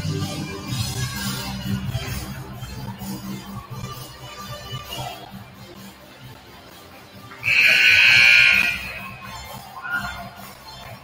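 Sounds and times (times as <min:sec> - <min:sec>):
scoreboard horn buzz: 0:07.4 - 0:09.2.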